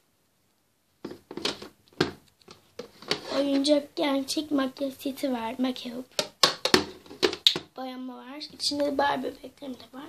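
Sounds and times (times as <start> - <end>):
knocks and rustles of handling: 1.0 - 3.8, 6.1 - 7.8.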